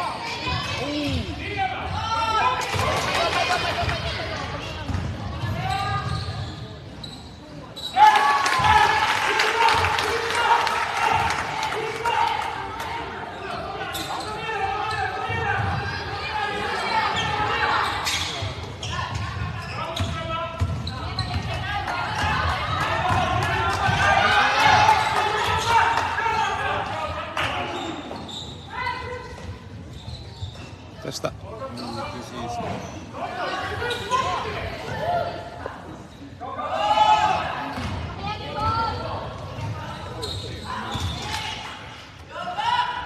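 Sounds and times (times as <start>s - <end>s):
basketball bouncing on wooden court: 4.8s - 6.2s, 19.1s - 21.6s.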